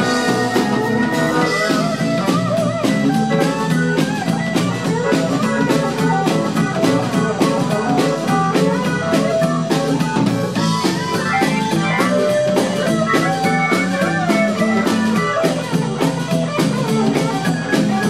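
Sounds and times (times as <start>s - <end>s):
blues band playing: 0.0s - 18.0s
electric guitar lead bending notes: 0.0s - 18.0s.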